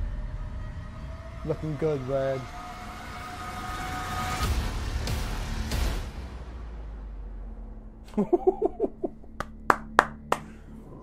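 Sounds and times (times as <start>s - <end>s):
sharp hand claps: 9.3s - 10.6s.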